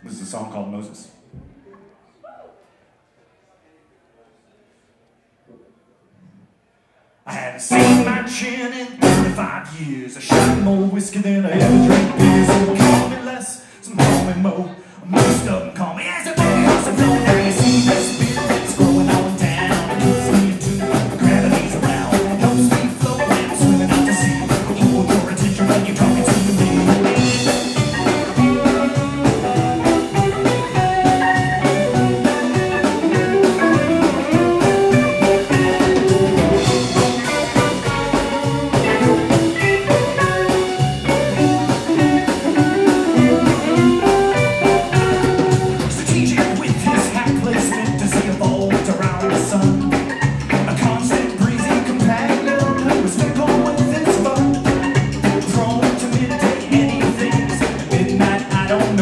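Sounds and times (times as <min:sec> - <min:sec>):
drums steady beat: 0:07.7 - 0:08.2, 0:09.0 - 0:09.4, 0:10.3 - 0:10.7, 0:11.6 - 0:13.2, 0:14.0 - 0:14.4, 0:15.1 - 0:15.6, 0:16.3 - 0:59.0
blues-rock band playing: 0:07.7 - 0:09.6, 0:10.2 - 0:13.3, 0:14.0 - 0:14.5, 0:15.1 - 0:59.0.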